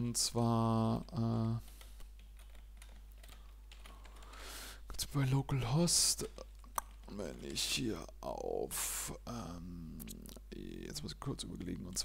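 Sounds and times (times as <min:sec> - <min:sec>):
computer keyboard typing: 0:01.4 - 0:04.5.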